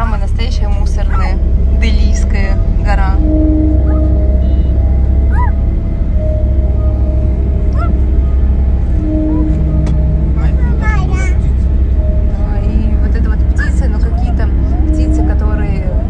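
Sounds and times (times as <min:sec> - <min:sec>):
car road noise rumble: 0:00.0 - 0:16.0
brief pitched tones: 0:03.2 - 0:12.4.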